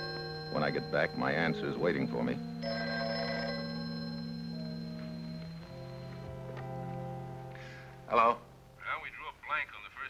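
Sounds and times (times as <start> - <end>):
telephone bell ringing: 0.0 - 6.9
low held notes music: 0.0 - 9.1.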